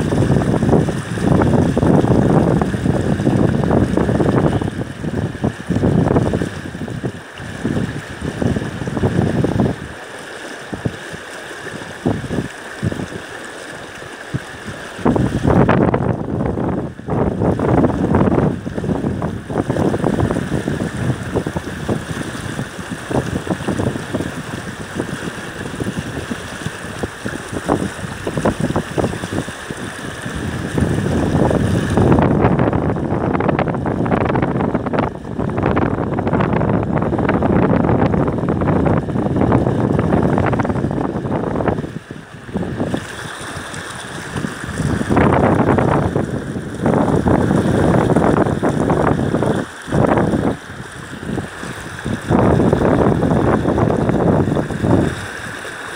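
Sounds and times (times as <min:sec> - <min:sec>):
wind buffeting microphone: 0:00.0 - 0:10.0, 0:10.6 - 0:55.7
fast shallow river rushing: 0:00.0 - 0:55.9.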